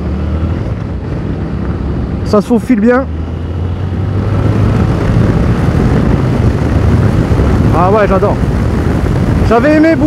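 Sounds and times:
motorcycle engine running: 0.0s - 10.0s
road noise: 0.0s - 10.0s
rushing wind: 0.0s - 10.0s.

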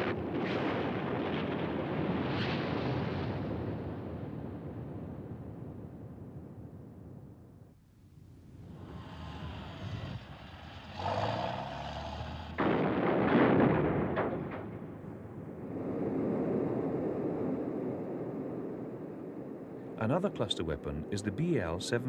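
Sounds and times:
jet engine noise: 14.4s - 22.0s.

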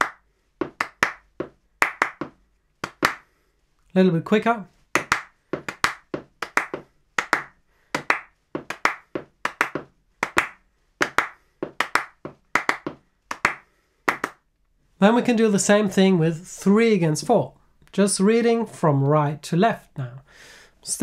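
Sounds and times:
hand claps in quick pairs: 0.0s - 3.2s, 5.0s - 14.4s.

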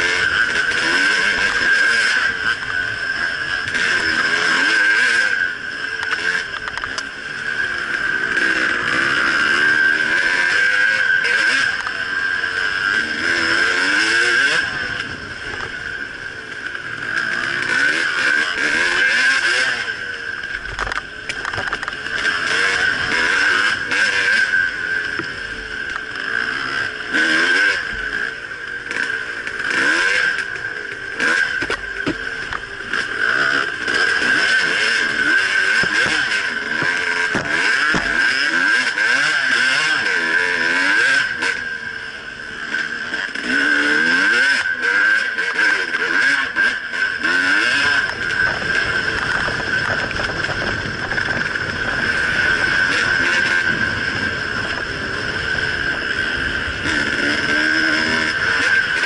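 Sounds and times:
dirt bike engine revving: 0.0s - 59.0s
wind and riding noise: 0.0s - 59.0s.

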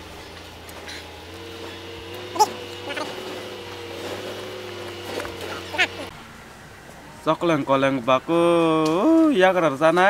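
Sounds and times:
steady two-note hum: 0.0s - 6.1s.

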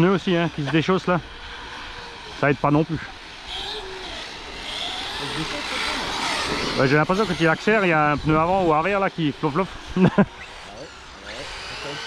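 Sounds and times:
rc car motor whine: 0.0s - 12.0s.

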